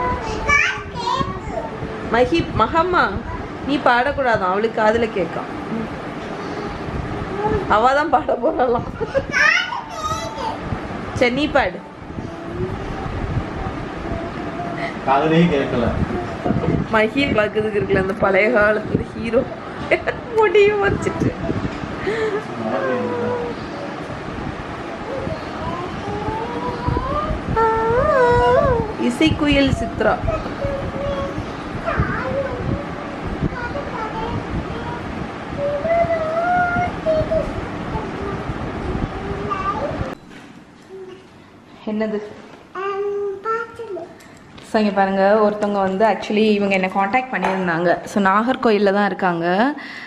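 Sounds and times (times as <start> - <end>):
girl's wordless vocal sound: 20.2 - 24.0, 24.9 - 40.2.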